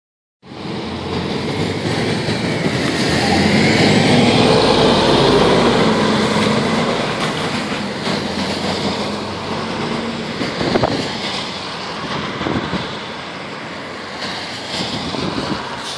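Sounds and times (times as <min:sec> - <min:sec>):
bus diesel engine accelerating: 0:00.4 - 0:15.9.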